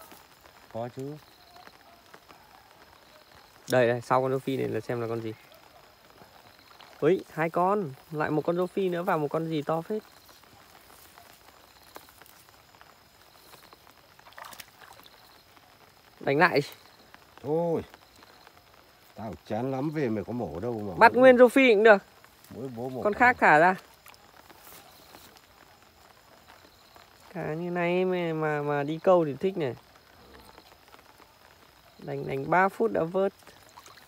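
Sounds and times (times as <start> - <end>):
soft water ticks: 0.0 - 34.0
small water splash: 13.3 - 15.6, 23.4 - 25.4, 33.2 - 34.0.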